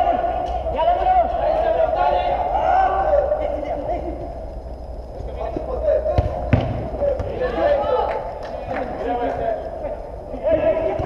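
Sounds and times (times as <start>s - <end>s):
players shouting: 0.0s - 3.9s, 5.7s - 11.0s
football kick thuds: 6.2s - 7.4s.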